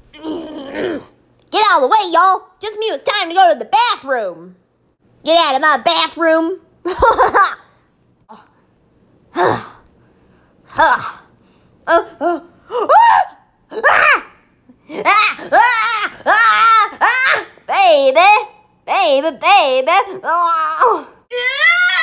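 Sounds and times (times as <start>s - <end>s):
child making vocal sounds: 0.1s - 1.1s
child laughing: 6.9s - 7.7s, 14.8s - 17.6s.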